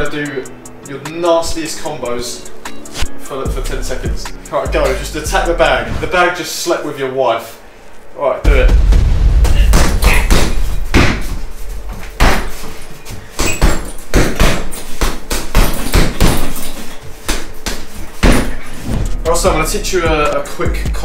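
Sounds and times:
punches and kicks on punch bag: 8.5s - 12.7s, 13.4s - 16.7s, 17.3s - 19.2s.

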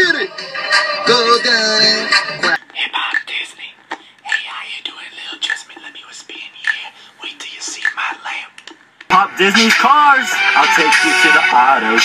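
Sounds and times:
man whispering: 2.4s - 8.6s.

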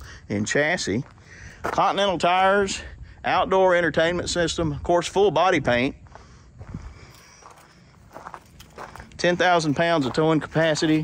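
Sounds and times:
faint footsteps on gravel: 0.5s - 2.6s, 5.7s - 11.0s.

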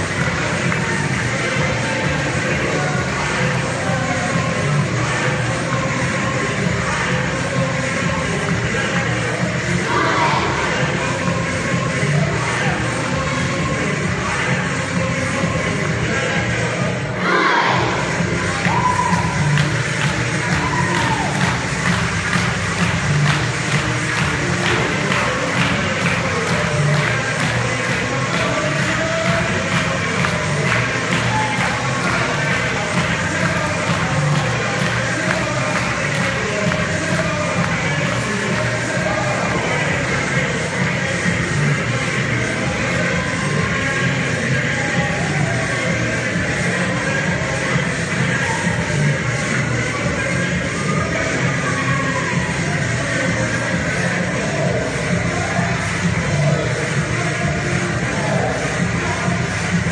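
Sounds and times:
loud dance music: 0.0s - 59.9s
children shouting: 9.8s - 10.7s, 17.2s - 18.0s.

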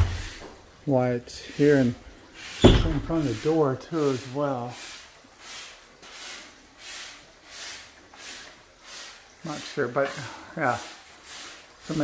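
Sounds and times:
rhythmic rubbing hiss: 0.0s - 12.0s.

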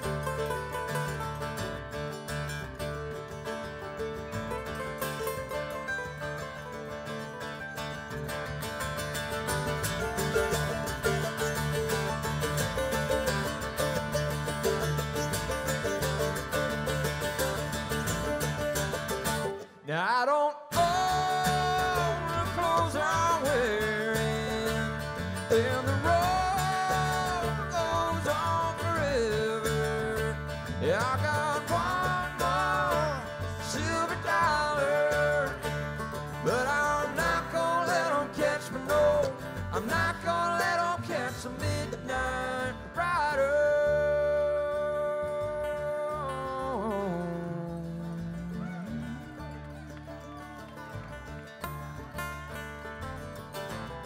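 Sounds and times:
bluegrass band playing: 0.0s - 19.9s, 20.7s - 54.0s
person singing: 19.8s - 49.8s.

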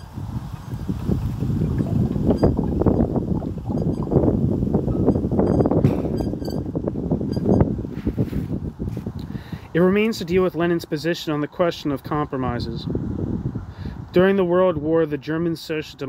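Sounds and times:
wind buffeting microphone: 0.0s - 10.5s, 12.0s - 15.0s.

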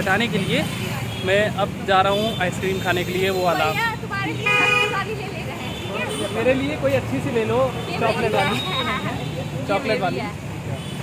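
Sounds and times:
street traffic hum: 0.0s - 11.0s
vehicle horn honking: 2.1s - 6.7s.

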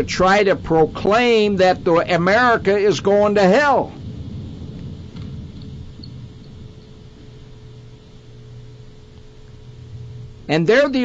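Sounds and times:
low background rumble and hum: 0.0s - 11.0s
faint steady tone: 3.8s - 11.0s.

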